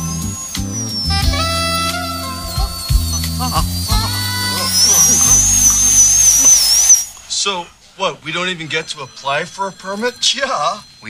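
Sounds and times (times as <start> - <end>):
dental drill whining: 0.0 - 11.0.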